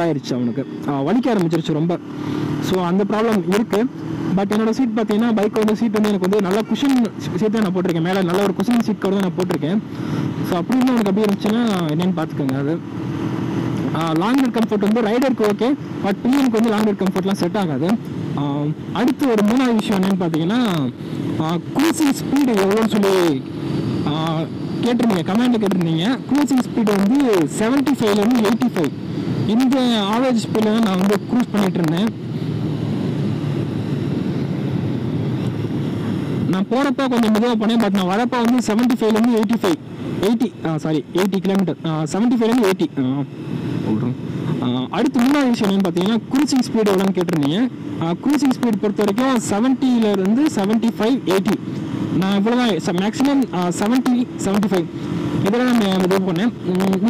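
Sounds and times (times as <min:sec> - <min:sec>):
man talking: 0:00.0 - 0:12.8, 0:13.9 - 0:32.2, 0:36.5 - 0:57.0
motorcycle engine cruising: 0:00.0 - 0:57.0
wind rush on microphone: 0:14.8 - 0:41.2.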